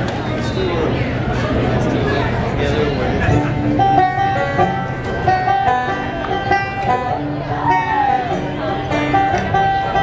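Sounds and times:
banjo plucking: 0:01.3 - 0:10.0.

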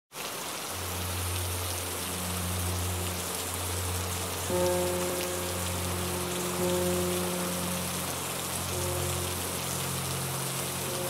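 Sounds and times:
steady rain pattering: 0:00.1 - 0:11.0
low musical drone: 0:00.7 - 0:11.0.

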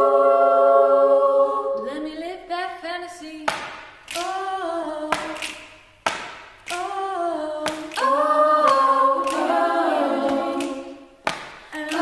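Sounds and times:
female choir singing in harmony: 0:00.0 - 0:02.2, 0:04.2 - 0:05.5, 0:06.7 - 0:12.0.

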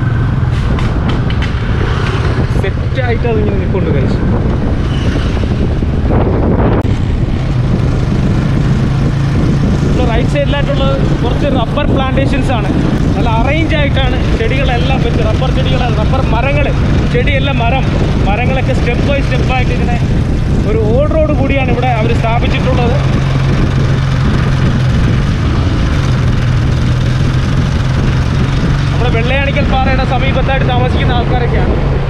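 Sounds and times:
vehicle engine running: 0:00.0 - 0:32.0
people talking: 0:02.5 - 0:04.2, 0:10.0 - 0:23.1, 0:29.0 - 0:31.8.

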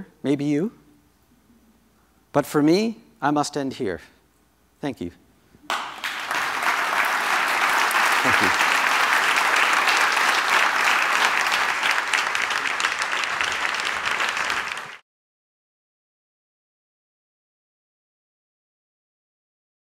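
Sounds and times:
audience applauding: 0:05.7 - 0:15.0.

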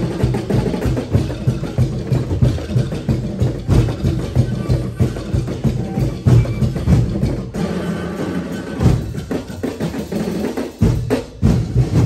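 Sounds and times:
deep drum strikes: 0:10.8 - 0:12.0.

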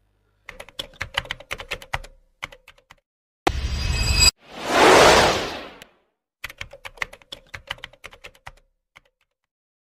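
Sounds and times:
whoosh: 0:03.5 - 0:05.8.

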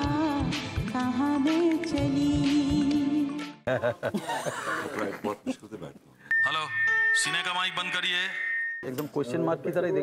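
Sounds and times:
high-pitched tone: 0:06.3 - 0:09.0.

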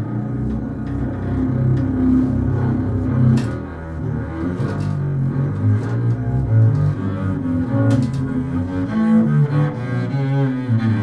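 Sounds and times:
bowed double bass: 0:00.0 - 0:11.0.

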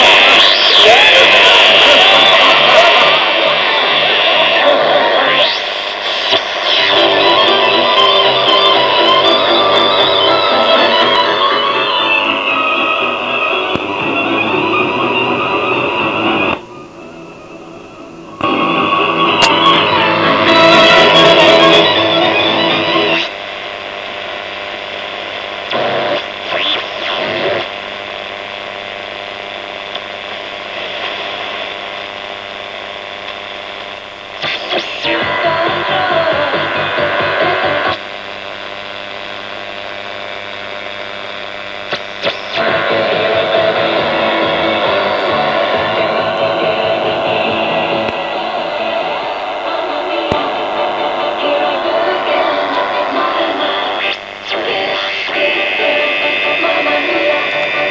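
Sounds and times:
broadcast music from radio: 0:00.0 - 0:57.9
radio hum and hiss: 0:00.0 - 0:57.9
radio tuning across stations: 0:00.0 - 0:57.9.

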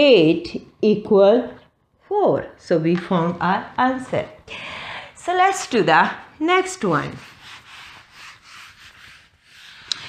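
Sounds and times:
eraser rubbing across a whiteboard: 0:06.6 - 0:10.0.

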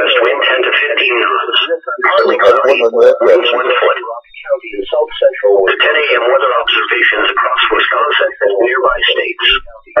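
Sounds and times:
radio voice reading report: 0:00.0 - 0:10.0.

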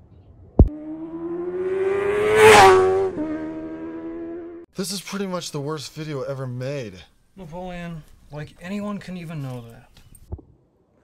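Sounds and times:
engine revving passing by: 0:00.6 - 0:04.7.

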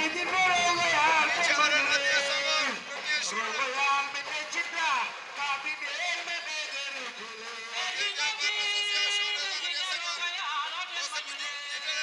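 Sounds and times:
music: 0:00.0 - 0:12.0
voices singing or chanting: 0:00.0 - 0:12.0.

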